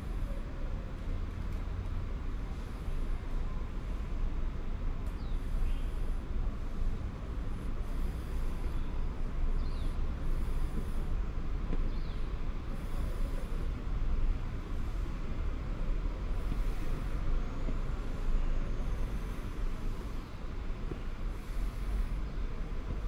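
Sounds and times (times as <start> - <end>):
low outdoor rumble: 0.0 - 23.0
faint bird chirp: 5.1 - 6.2, 7.9 - 11.1, 11.8 - 13.6.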